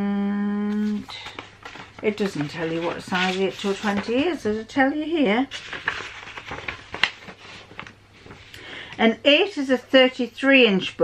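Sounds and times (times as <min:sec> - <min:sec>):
paper rustling and crackling: 0:00.7 - 0:04.8, 0:05.4 - 0:08.5.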